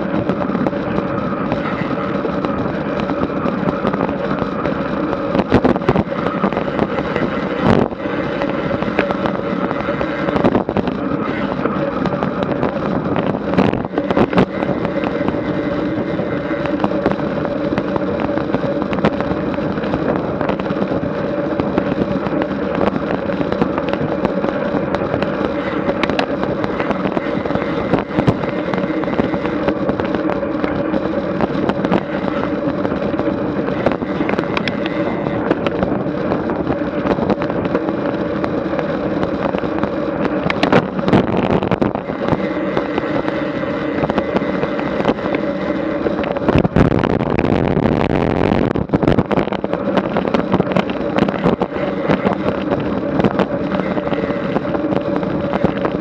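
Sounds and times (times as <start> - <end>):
bike clicks and rattles: 0.0 - 46.8
tyre and wind noise: 0.0 - 56.0.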